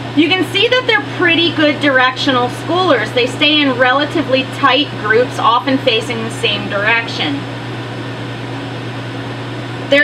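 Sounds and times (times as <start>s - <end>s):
steady machine hum: 0.0s - 10.0s
woman's voice: 0.1s - 7.5s.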